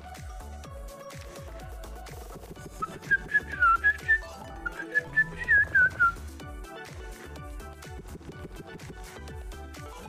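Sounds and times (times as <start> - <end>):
electronic background music: 0.0 - 10.0
person whistling a tune: 2.7 - 6.3.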